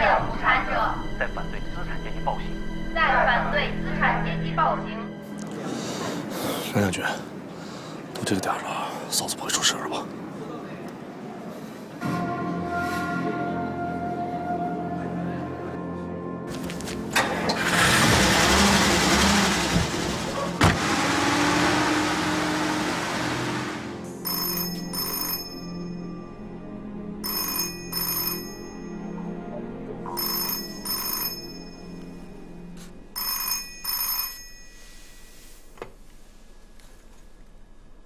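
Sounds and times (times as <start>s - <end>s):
soft background music: 0.0s - 7.5s, 12.0s - 17.8s, 23.5s - 35.6s
car engine running: 17.1s - 24.0s
telephone ringing: 24.2s - 26.1s, 27.2s - 29.2s, 30.1s - 32.0s, 33.2s - 35.4s.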